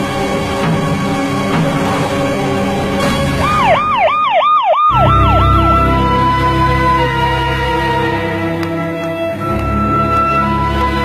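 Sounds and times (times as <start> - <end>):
background music: 0.0 - 11.0
ambulance siren yelping: 3.4 - 11.0.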